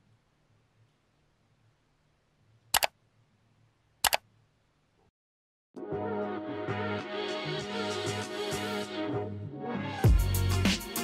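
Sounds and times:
mouse double click: 4.0 - 4.2.

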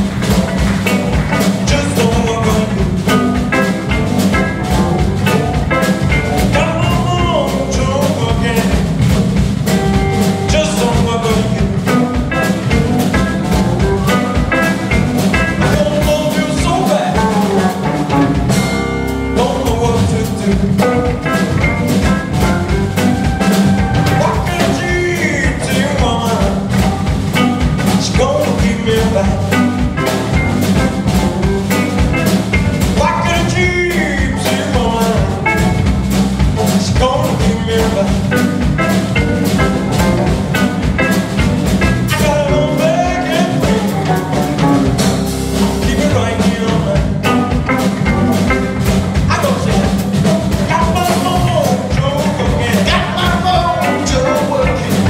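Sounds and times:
bass guitar: 0.0 - 55.0
drum kit: 0.0 - 55.0
electric guitar: 0.0 - 55.0
man singing: 1.3 - 9.2, 10.2 - 31.0, 31.7 - 35.9, 36.6 - 55.0.

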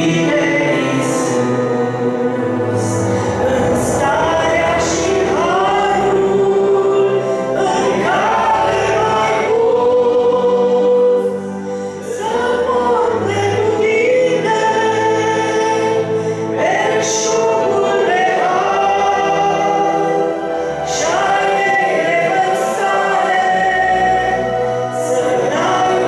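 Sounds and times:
electronic keyboard chords: 0.0 - 26.0.

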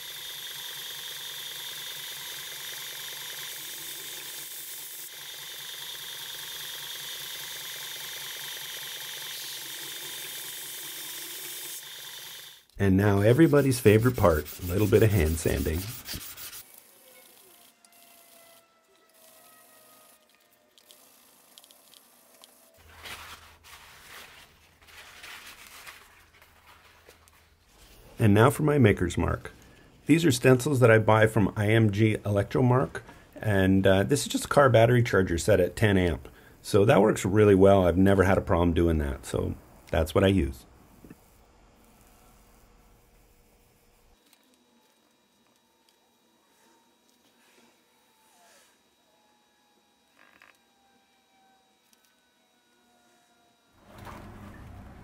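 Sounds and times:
belt grinder hissing and whining: 0.0 - 22.9
paper towel rubbing on knife blade: 12.9 - 20.3, 22.8 - 27.1.

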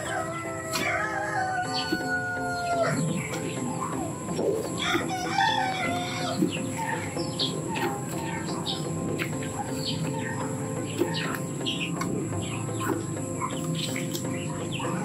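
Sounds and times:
rooster crowing: 0.0 - 3.3, 4.8 - 6.4
chickens clucking: 0.0 - 15.0.

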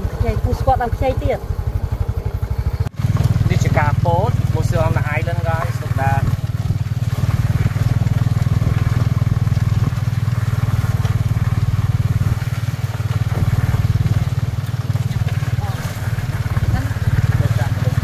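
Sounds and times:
voices talking: 0.0 - 8.2, 13.9 - 18.0
motorcycle engine droning: 0.0 - 18.0.

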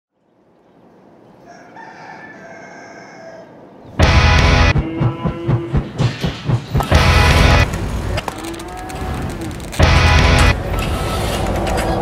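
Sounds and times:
rooster crowing: 1.4 - 3.6.

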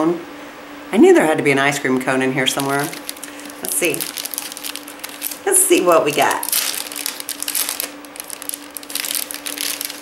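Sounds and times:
plastic bag crinkling: 2.4 - 10.0.

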